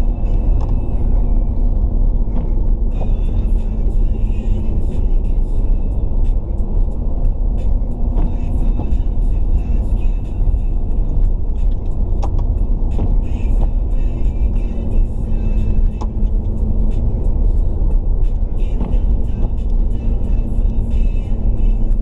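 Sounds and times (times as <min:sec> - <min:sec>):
car engine rumble: 0:00.0 - 0:22.0
steady hum: 0:00.0 - 0:22.0
tyres on wet road: 0:00.0 - 0:22.0.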